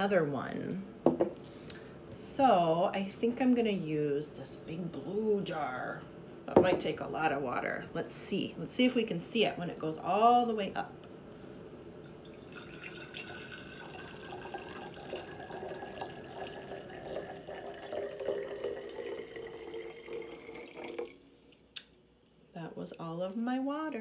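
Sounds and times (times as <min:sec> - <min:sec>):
water pouring into glass jar: 0:12.1 - 0:22.5.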